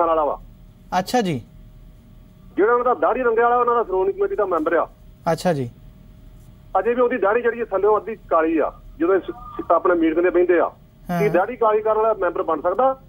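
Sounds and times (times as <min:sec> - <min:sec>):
person talking over telephone: 0:06.8 - 0:13.0.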